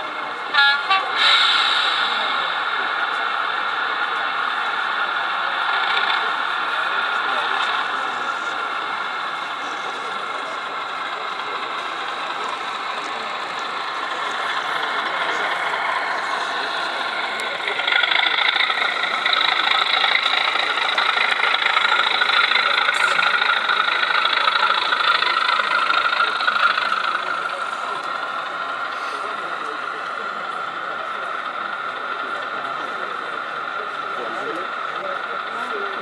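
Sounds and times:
diesel engine through small speaker: 0.0 - 36.0.

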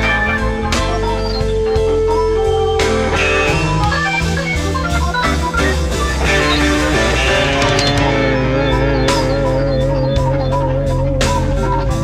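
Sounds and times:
electric guitar: 0.0 - 12.0
organ: 0.0 - 12.0
slow blues band instrumental: 0.0 - 12.0.

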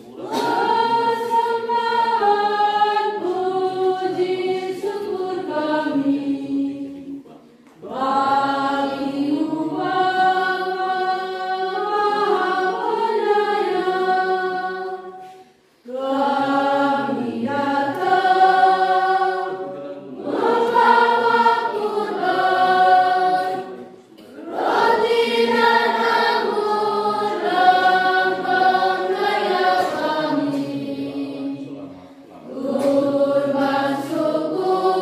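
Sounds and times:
congregation singing a hymn: 0.0 - 35.0.

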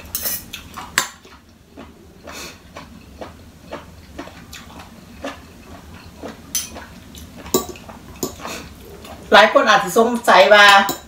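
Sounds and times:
cutlery clinking on a plate: 0.1 - 0.5, 7.5 - 8.4, 10.7 - 11.0.

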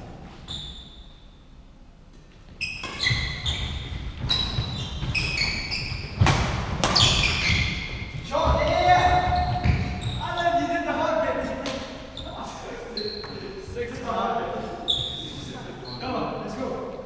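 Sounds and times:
shoes squeaking on wooden floor: 2.4 - 10.7, 12.0 - 16.4
rackets hitting shuttlecock: 6.1 - 8.1.

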